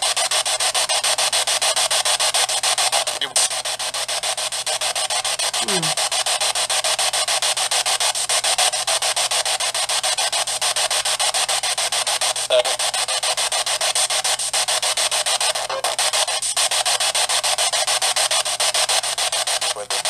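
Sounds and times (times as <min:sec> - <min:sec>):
pulsing radio static: 0:00.0 - 0:06.1, 0:09.1 - 0:20.0.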